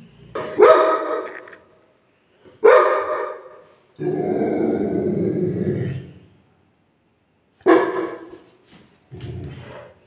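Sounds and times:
dog barking: 0.4 - 1.5, 2.6 - 3.6, 7.6 - 8.4.

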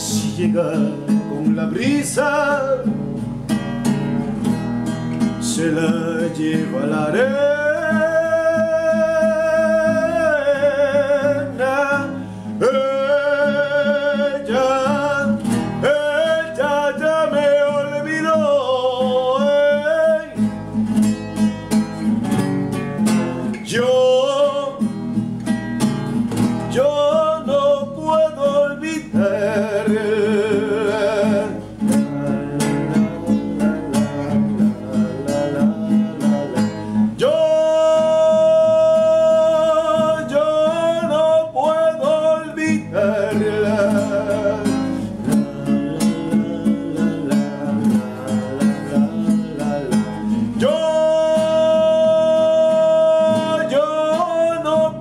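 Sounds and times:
man singing with vibrato: 0.0 - 3.6, 5.2 - 21.6, 22.6 - 55.0
classical guitar strumming: 0.0 - 55.0.

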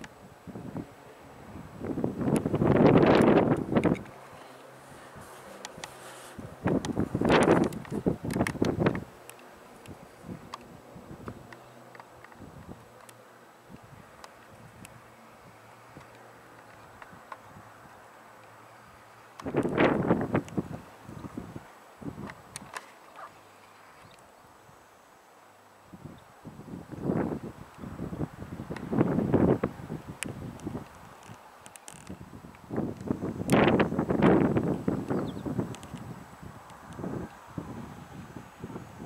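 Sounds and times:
wind buffeting microphone: 0.0 - 13.0, 13.6 - 18.2, 18.8 - 23.3, 25.9 - 39.0.

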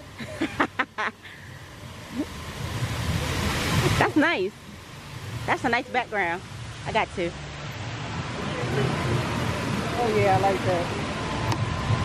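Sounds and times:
water rushing down fountain wall: 0.0 - 12.0
wind rumble on microphone: 7.5 - 12.0.

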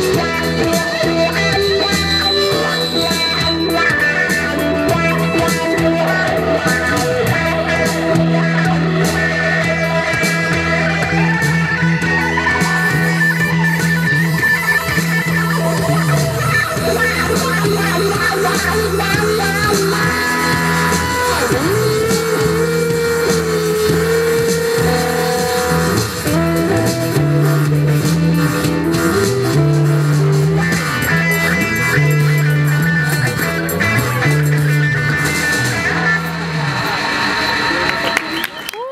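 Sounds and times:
held note sliding in pitch: 0.0 - 38.6
live rock band playing: 0.0 - 38.9.

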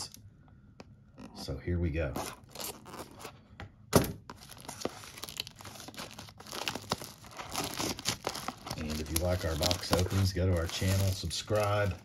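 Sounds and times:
scissors cutting plastic wrap: 2.2 - 3.2, 4.3 - 12.0
plastic wrap crinkling and tearing: 2.2 - 3.3, 4.3 - 12.0.

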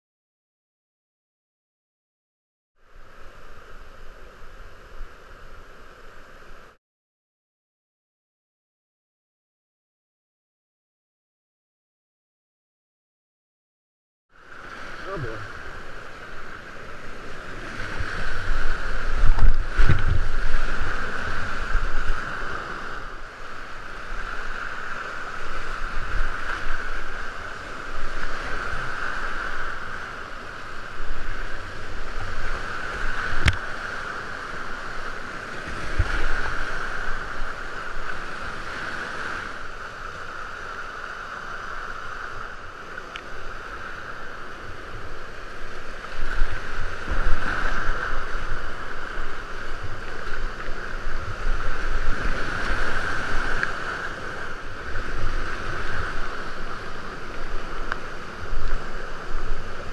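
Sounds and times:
whitewater rapids rushing: 14.5 - 59.9.

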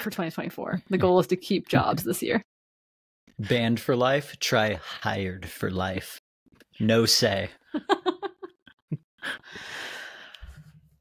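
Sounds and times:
person speaking: 3.4 - 6.1, 6.7 - 8.5
person laughing breathily: 7.7 - 10.7.

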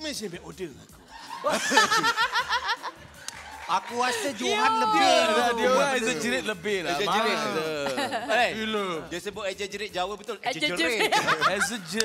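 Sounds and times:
people laughing: 0.9 - 8.8, 10.8 - 12.0.

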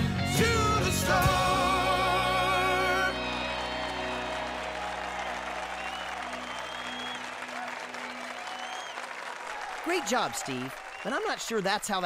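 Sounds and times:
applause: 2.3 - 12.0.

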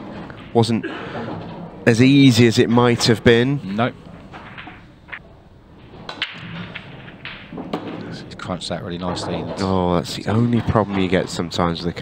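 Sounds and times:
pool balls cracking and clattering: 0.0 - 12.0
pool cue striking ball: 5.9 - 8.2.

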